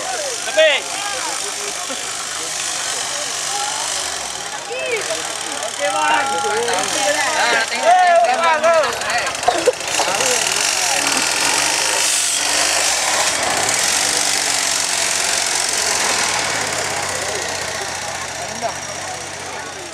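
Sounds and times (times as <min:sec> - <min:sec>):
buggy engine running loud: 0:00.0 - 0:19.9
crowd voices: 0:00.0 - 0:19.9.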